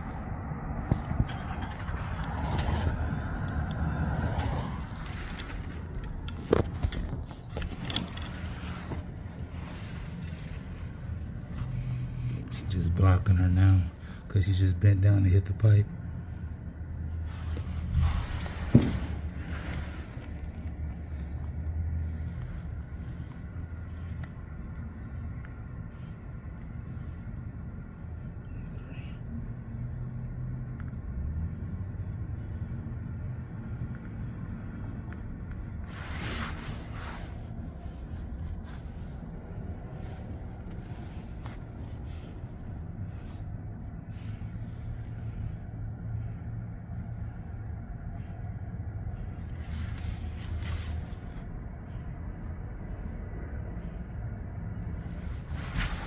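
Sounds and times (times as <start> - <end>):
distant traffic: 0.0 - 56.0.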